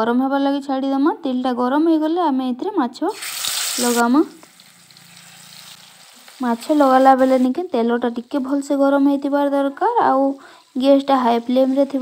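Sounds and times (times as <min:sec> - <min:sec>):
fish frying in hot oil: 0:03.1 - 0:07.6.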